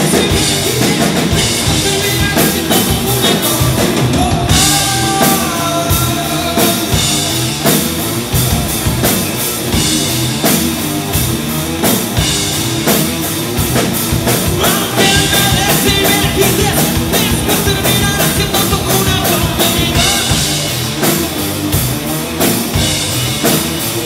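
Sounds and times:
distorted electric guitars: 0.0 - 24.0
drum kit driving beat: 0.0 - 24.0
rock band playing live: 0.0 - 24.0.

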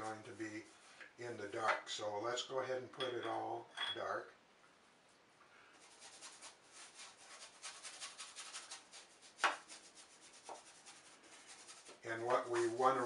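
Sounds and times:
bristle brush scrubbing: 5.8 - 13.0.

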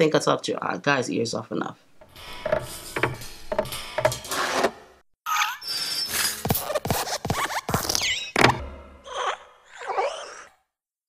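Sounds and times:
springy cartoon squeaks: 2.0 - 10.3.

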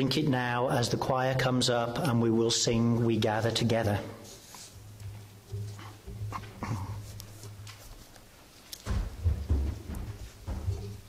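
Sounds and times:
footsteps and thumps on platform: 8.8 - 11.0.

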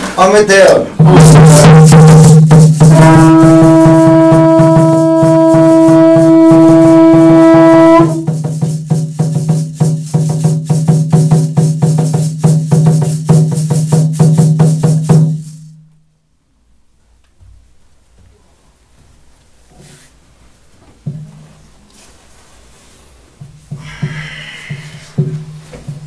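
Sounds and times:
wind instrument long note: 2.8 - 8.4
rattle shaken: 8.1 - 15.8.

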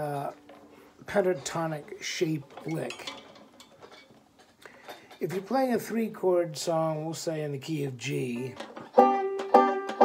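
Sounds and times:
banjo handling ticks and clicks: 0.2 - 5.5, 8.1 - 10.0.

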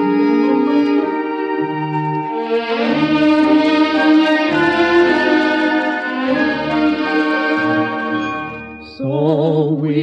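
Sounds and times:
orchestra playing: 0.0 - 9.1.

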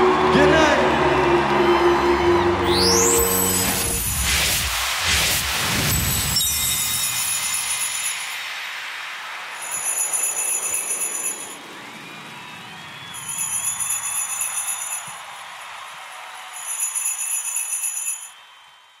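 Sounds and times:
jingle bells shaken: 5.9 - 8.5, 9.6 - 11.6, 13.1 - 18.4.

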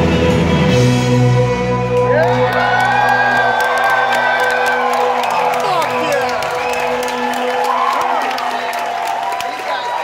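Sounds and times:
live rock band playing: 0.0 - 2.8
crowd cheering and whooping: 1.9 - 10.0.

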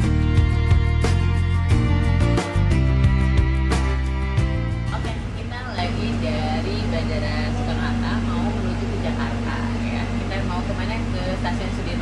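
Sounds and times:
background music: 0.0 - 12.0
low drone: 0.0 - 12.0
train carriage hum: 4.2 - 12.0.

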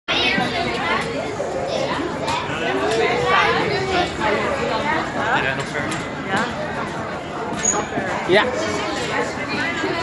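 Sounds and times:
people chatting: 0.1 - 10.0.

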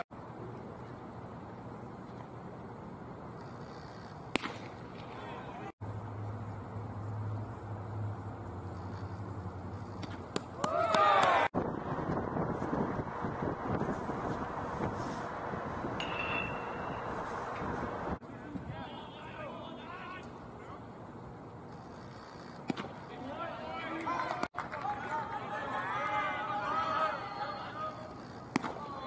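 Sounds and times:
ballpark background noise: 4.2 - 5.7, 18.2 - 29.0
sharp cracks: 4.3 - 5.1
people shouting: 10.6 - 11.5, 25.0 - 28.1
ball popping into mitt: 28.5 - 28.8.

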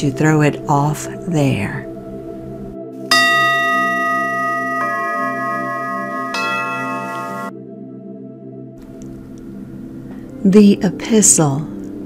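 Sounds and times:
soft music pad: 0.0 - 12.0
bell-like chime tones: 3.1 - 7.6.

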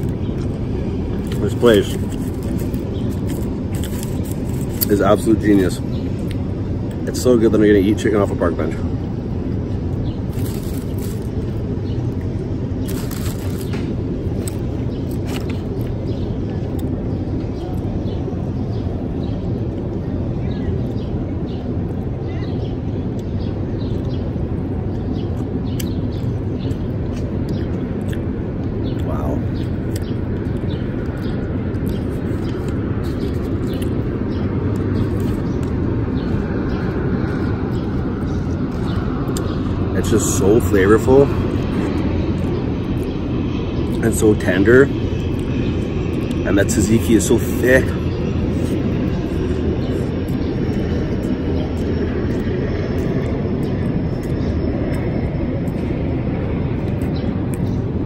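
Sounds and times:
low outdoor rumble: 0.0 - 58.0
man chewing and lip-smacking: 16.6 - 17.0, 23.9 - 39.6, 46.1 - 46.4, 48.5 - 57.9.

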